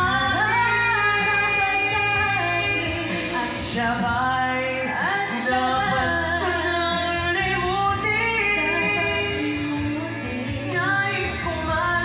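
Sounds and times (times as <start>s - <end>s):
backing track music: 0.0s - 12.0s
person singing into a microphone: 0.0s - 12.0s.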